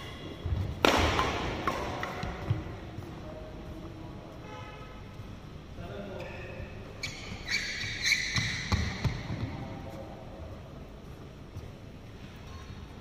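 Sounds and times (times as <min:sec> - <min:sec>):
sports shoes squeaking on court: 0:06.4 - 0:09.6.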